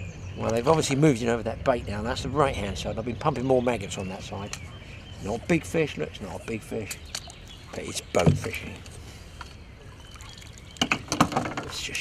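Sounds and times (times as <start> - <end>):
water splashing: 6.4 - 8.8, 9.8 - 12.0
water trickling: 9.6 - 12.0.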